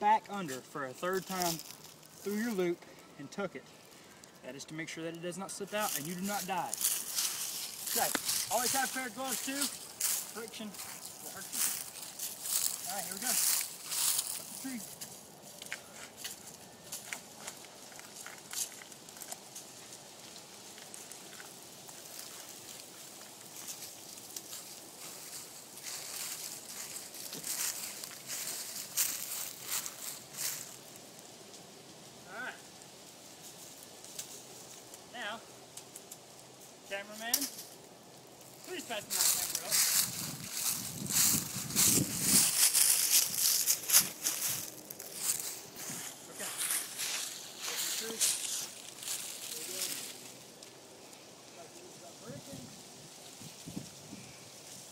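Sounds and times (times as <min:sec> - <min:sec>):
faint outdoor hiss: 0:00.0 - 0:54.9
dry leaves crunching: 0:00.1 - 0:54.9
shoes scraping bark: 0:05.6 - 0:20.0, 0:38.6 - 0:50.4.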